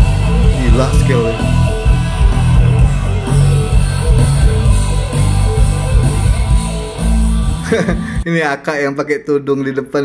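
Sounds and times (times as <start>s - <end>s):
bass guitar: 0.0s - 8.3s
drums: 0.0s - 8.3s.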